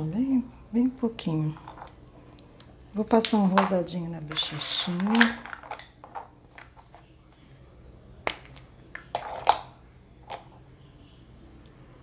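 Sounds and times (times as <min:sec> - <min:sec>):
small objects clicking and tapping: 0:03.2 - 0:07.0.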